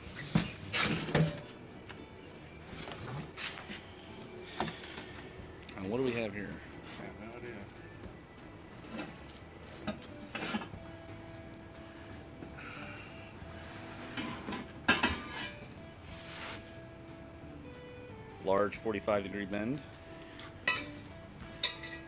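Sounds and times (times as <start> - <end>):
metal pipe clink: 20.6 - 21.0, 21.6 - 22.0.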